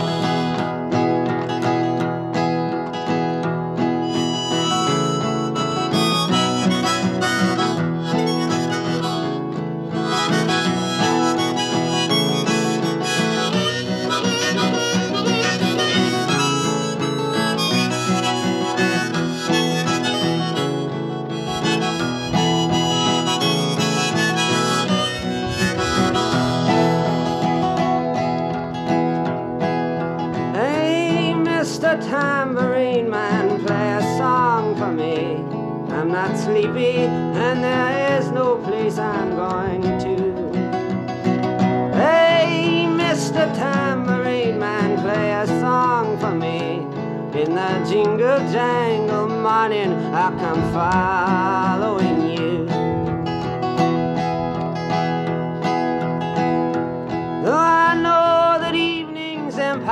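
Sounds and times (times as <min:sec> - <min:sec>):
acoustic guitar strumming: 0:00.0 - 0:59.9
harmonica melody: 0:00.0 - 0:59.9.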